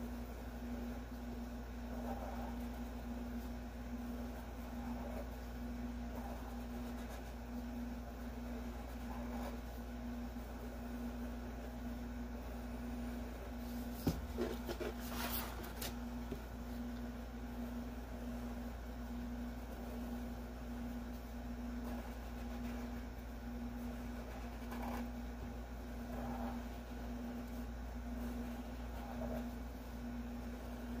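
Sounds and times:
steady background hum: 0:00.0 - 0:31.0
marker drawing on paper: 0:01.8 - 0:11.8.

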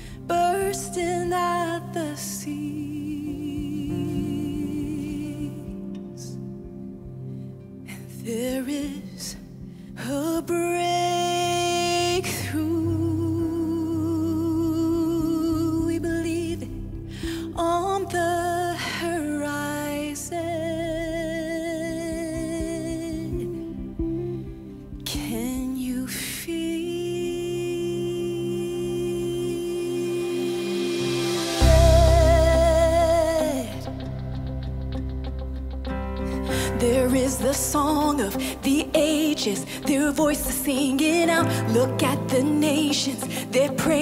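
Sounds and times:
soft keyboard accompaniment: 0:00.0 - 0:44.0.

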